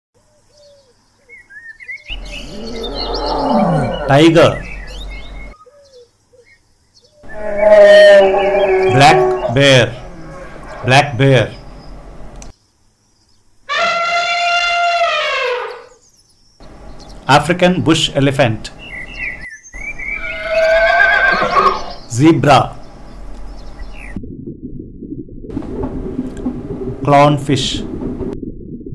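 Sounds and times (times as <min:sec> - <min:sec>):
birds chirping faintly: 0:00.2 - 0:24.2
zebra whinny-like call: 0:02.2 - 0:04.5, 0:07.2 - 0:11.1, 0:13.7 - 0:16.0, 0:20.0 - 0:22.1
tiger roaring: 0:02.2 - 0:04.9, 0:07.2 - 0:11.8.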